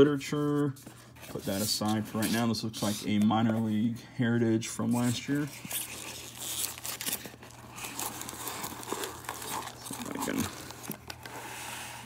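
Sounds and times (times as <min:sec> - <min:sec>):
rustling foam and foil packs: 0:04.7 - 0:11.6.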